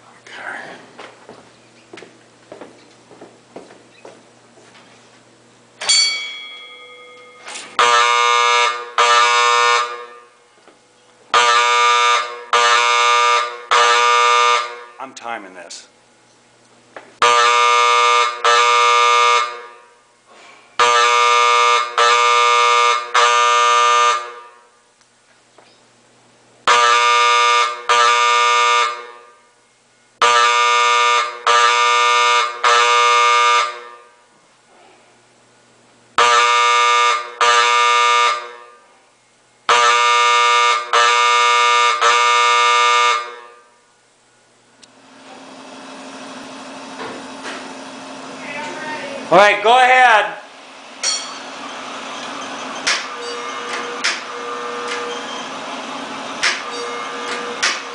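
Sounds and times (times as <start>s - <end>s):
fire alarm horn buzzing blasts: 5.9s - 10.6s, 11.3s - 15.1s, 17.2s - 20.2s, 20.8s - 25.0s, 26.6s - 34.4s, 36.1s - 39.0s, 39.6s - 44.0s, 47.8s - 57.9s.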